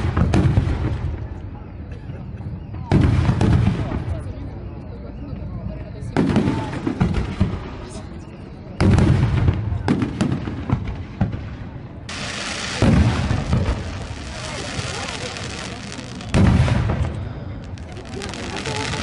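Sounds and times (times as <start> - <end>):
fireworks booming: 0.0 - 4.4, 6.1 - 19.0
fireworks pops and crackles: 0.0 - 4.9, 5.8 - 19.0.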